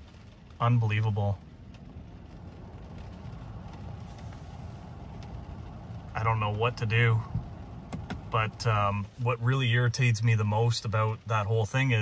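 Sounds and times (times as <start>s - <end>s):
car cabin low hum: 0.0s - 12.0s.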